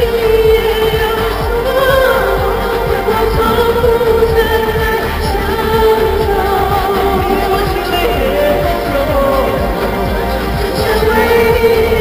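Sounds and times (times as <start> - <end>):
person singing: 0.0 - 12.0.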